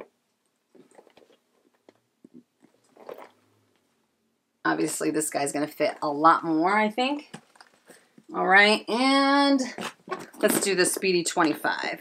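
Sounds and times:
handbags rustling: 2.6s - 3.4s.

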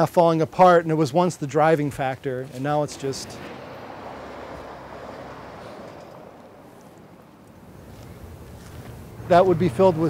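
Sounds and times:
outdoor background hum: 0.4s - 10.0s.

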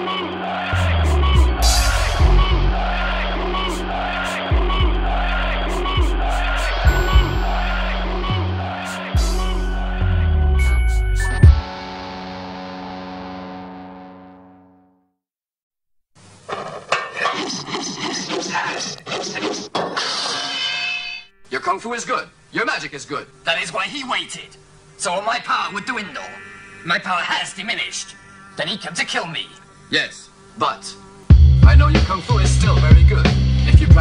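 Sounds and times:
hip-hop beat: 0.0s - 11.8s, 31.3s - 34.0s
held bass note: 0.8s - 6.2s, 6.8s - 11.7s
kick drums: 11.4s - 11.6s.

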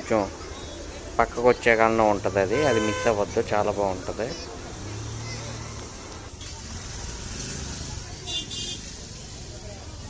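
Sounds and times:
crowd chatter: 0.0s - 10.0s
low traffic rumble: 0.0s - 10.0s.

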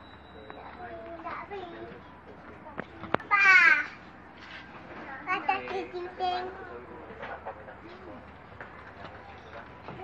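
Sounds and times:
child and people talking: 0.4s - 4.0s, 4.9s - 6.9s.

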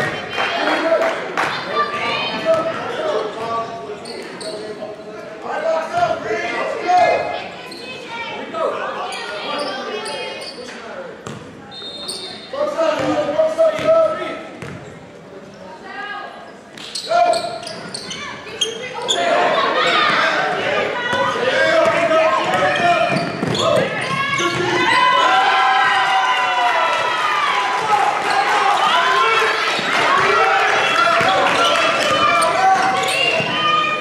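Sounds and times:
echoing indistinct voices: 0.0s - 34.0s.

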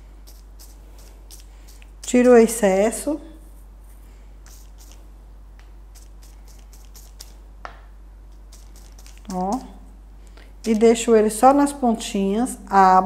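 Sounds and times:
foam dabbing on paper: 0.0s - 5.2s, 5.8s - 9.8s, 10.6s - 11.0s.

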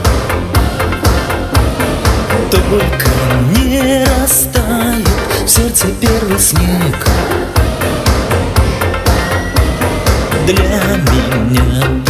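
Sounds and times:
pulsing bass line: 0.0s - 12.0s
synth-pop instrumental: 0.0s - 12.0s.

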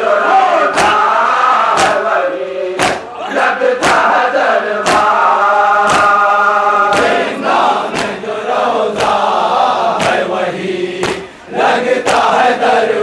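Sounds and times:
men chanting together: 0.0s - 13.0s
hands slapping chests: 0.7s - 1.1s, 1.7s - 2.1s, 2.8s - 3.2s, 3.8s - 4.2s, 4.8s - 5.2s, 5.8s - 8.3s, 8.9s - 10.3s, 11.0s - 11.4s, 12.0s - 12.4s.

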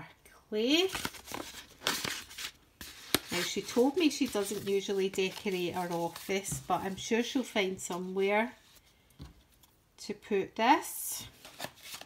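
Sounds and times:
paper rustling and crinkling: 0.9s - 8.0s, 11.4s - 12.0s.

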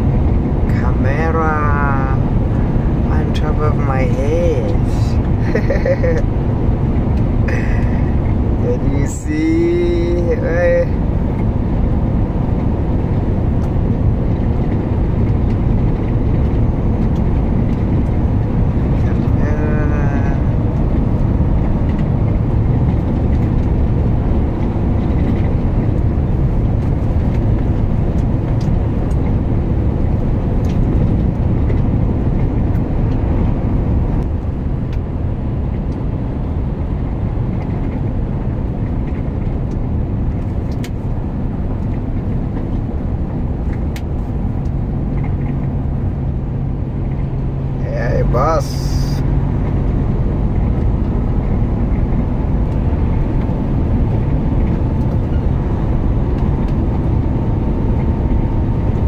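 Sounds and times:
truck engine rumble in cab: 0.0s - 59.0s.

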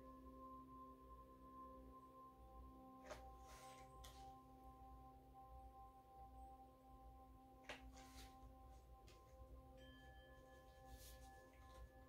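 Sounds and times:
sustained ringing drone tones: 0.0s - 12.0s.

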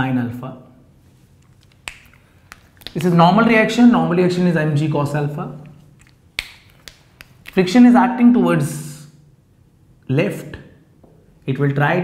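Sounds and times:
marker clicking on whiteboard: 1.6s - 3.2s, 5.6s - 7.7s.

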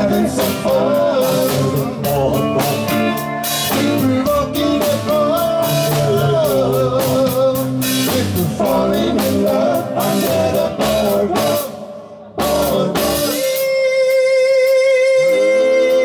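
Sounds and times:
person singing: 0.0s - 16.0s
rock band playing live: 0.0s - 16.0s.

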